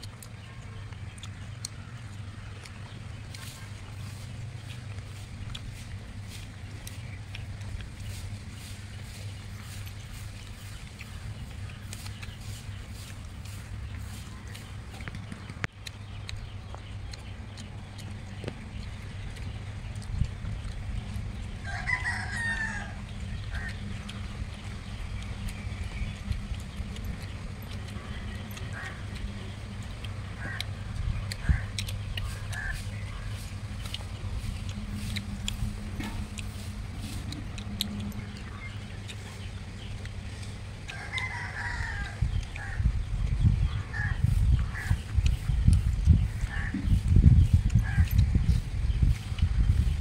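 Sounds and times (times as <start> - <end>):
small clicks from eating: 0.0 - 50.0
steady low hum: 0.0 - 50.0
rooster crowing: 21.6 - 23.0, 40.9 - 42.2.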